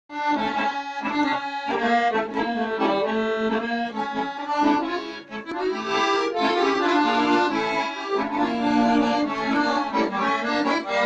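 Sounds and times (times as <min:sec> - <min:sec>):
accordion playing folk tune: 0:00.1 - 0:11.0.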